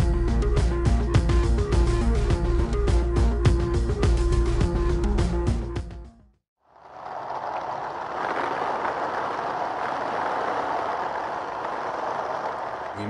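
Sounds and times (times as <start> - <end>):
film music: 0.0 - 6.2
steady rushing noise: 6.6 - 13.0.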